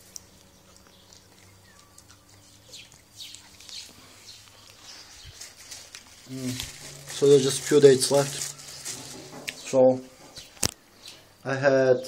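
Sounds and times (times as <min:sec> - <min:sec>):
dog chewing: 0:00.0 - 0:08.6
low steady hum: 0:00.0 - 0:12.0.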